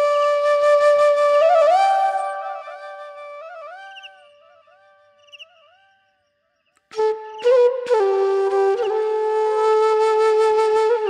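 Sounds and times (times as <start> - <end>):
bamboo flute phrase: 6.9 - 11.0.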